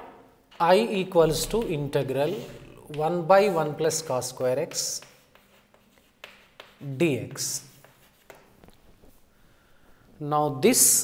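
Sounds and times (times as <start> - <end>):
chalk scratching on blackboard: 2.2 - 9.2.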